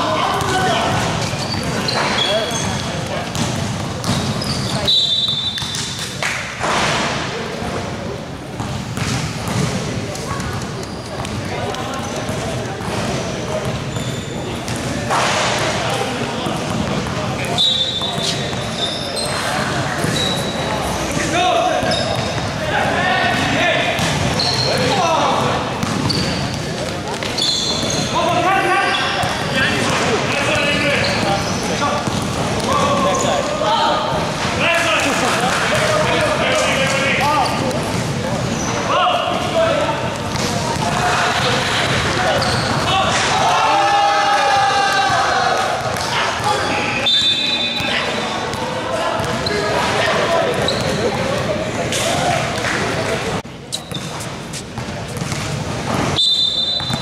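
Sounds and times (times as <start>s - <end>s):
basketball bouncing on court: 0.3s - 5.9s, 8.6s - 11.5s, 12.3s - 15.0s, 16.4s - 18.7s, 19.9s - 20.4s, 23.3s - 28.2s, 29.1s - 33.3s, 39.4s - 43.0s, 49.2s - 49.5s, 54.8s - 57.0s
shoe squeaks: 1.0s - 3.0s, 4.0s - 6.1s, 10.5s - 12.4s, 13.8s - 14.7s, 17.5s - 21.1s, 21.8s - 22.5s, 24.3s - 25.0s, 25.8s - 29.7s, 30.4s - 33.5s, 37.2s - 37.8s, 42.2s - 42.9s, 46.4s - 48.6s, 49.2s - 49.7s, 50.4s - 51.2s, 53.7s - 55.4s, 56.1s - 57.0s
players shouting: 38.6s - 52.9s.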